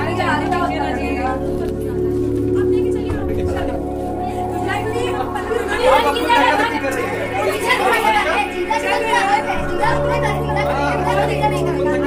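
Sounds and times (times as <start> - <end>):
background music: 0.0 - 12.0
people talking over one another: 0.0 - 12.0.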